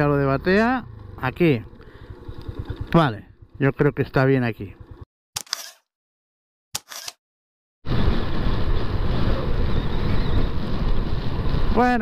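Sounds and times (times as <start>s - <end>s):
motorcycle engine running: 0.0s - 5.1s
wind rush on microphone: 7.9s - 12.0s.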